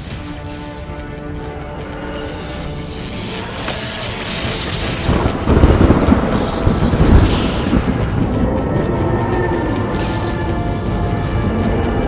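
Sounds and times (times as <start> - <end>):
dramatic music score: 0.0 - 12.0
deep rumbling explosion boom: 5.0 - 9.1.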